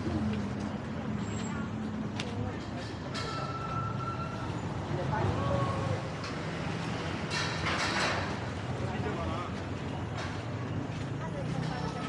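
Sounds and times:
traffic rumble: 0.0s - 12.0s
people talking: 10.6s - 12.0s.

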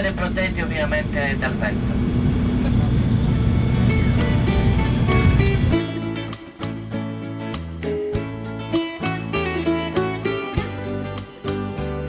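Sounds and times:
bus engine and road rumble: 0.0s - 6.0s
guitar music: 2.8s - 12.0s.

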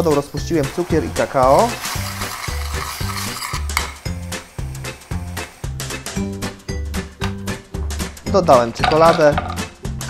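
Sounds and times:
background music with beat: 0.0s - 10.0s
metal spoon scraping saucepan: 1.3s - 4.0s.

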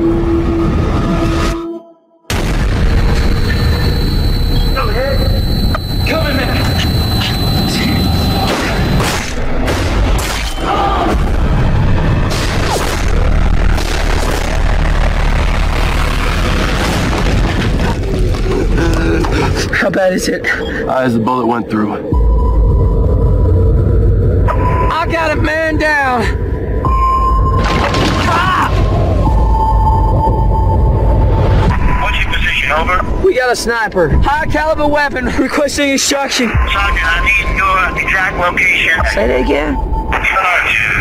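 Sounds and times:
thin steady high tone: 3.3s - 9.0s
people shouting: 10.4s - 11.2s
deep booming rumble: 11.1s - 19.6s
sharp cracks and hits: 12.2s - 18.6s.

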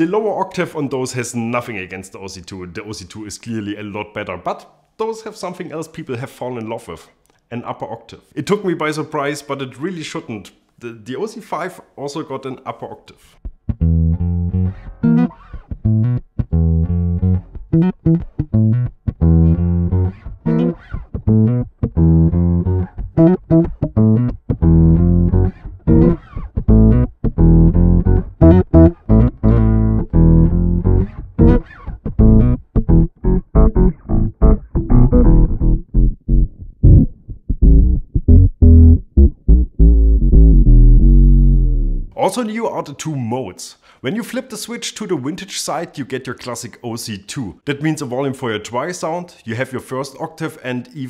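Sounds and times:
electric bass with octave effect: 13.6s - 42.2s.

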